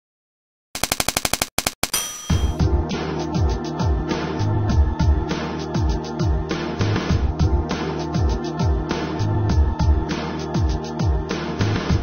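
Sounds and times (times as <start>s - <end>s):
rapid rattle of sharp clicks: 0.8s - 2.0s.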